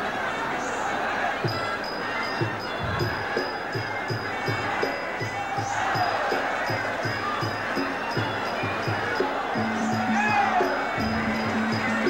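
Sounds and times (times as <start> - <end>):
crowd noise: 0.0 - 12.0
drum beating: 1.4 - 12.0.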